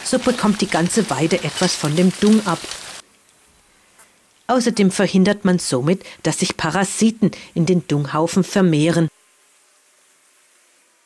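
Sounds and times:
faint steady buzzing hum: 0.0 - 11.0.

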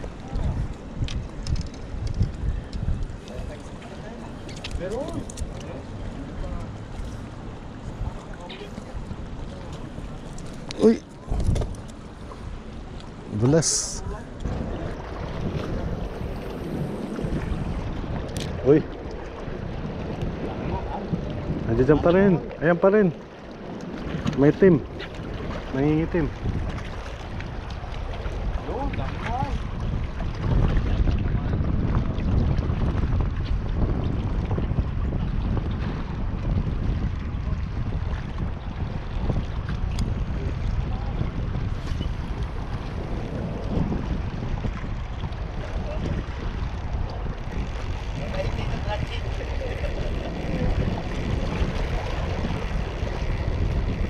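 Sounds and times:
sea washing against rocks: 0.0 - 54.0
wind buffeting microphone: 0.0 - 54.0.

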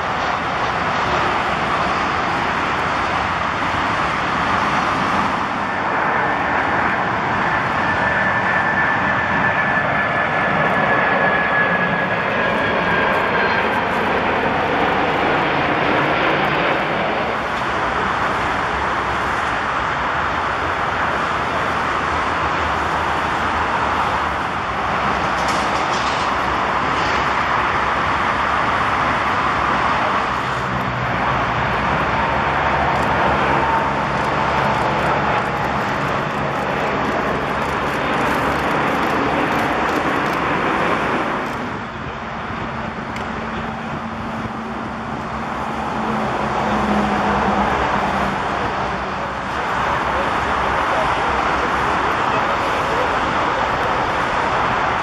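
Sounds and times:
faint engine whine: 0.0 - 54.9
jet engines rushing: 0.0 - 55.0.

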